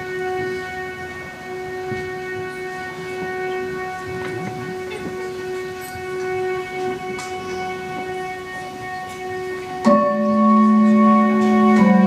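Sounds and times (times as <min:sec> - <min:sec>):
sustained drone note: 0:00.0 - 0:12.0.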